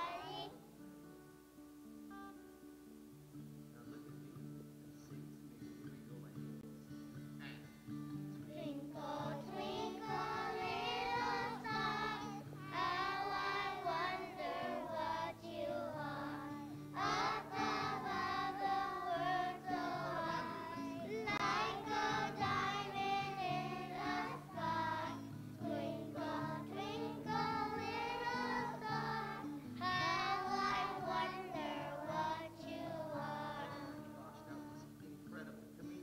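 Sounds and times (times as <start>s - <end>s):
children's choir singing: 0.0s - 0.6s, 8.5s - 34.9s.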